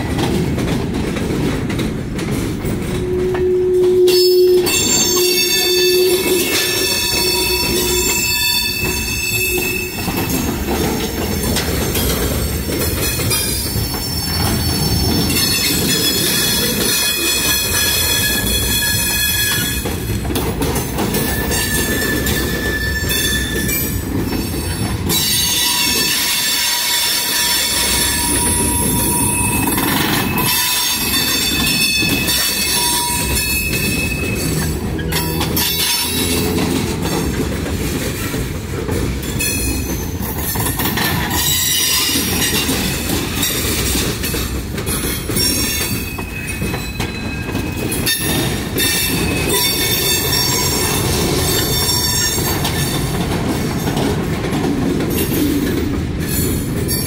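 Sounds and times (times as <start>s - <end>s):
train wheels rumbling: 0.0s - 57.0s
wheel flanges squealing on rails: 2.3s - 54.3s.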